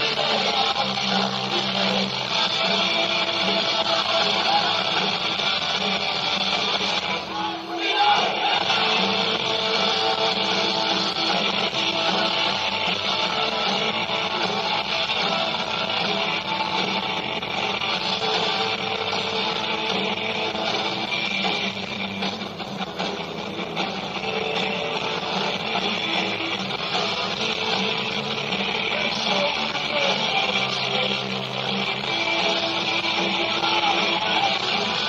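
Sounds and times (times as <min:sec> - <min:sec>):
rock band playing live: 0:00.0 - 0:35.0.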